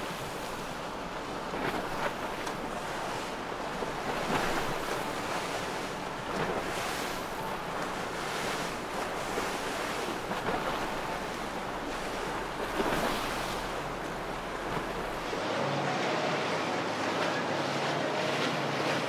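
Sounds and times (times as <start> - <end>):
river water washing around boats: 0.0 - 19.0.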